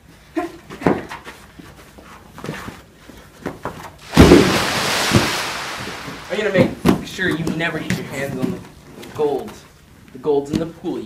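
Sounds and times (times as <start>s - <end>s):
water splashing into pool: 4.0s - 7.0s.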